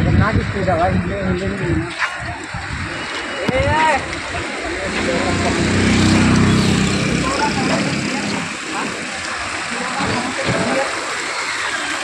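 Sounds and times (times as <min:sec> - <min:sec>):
street noise: 0:00.0 - 0:12.0
vehicle engine passing by: 0:04.5 - 0:09.3.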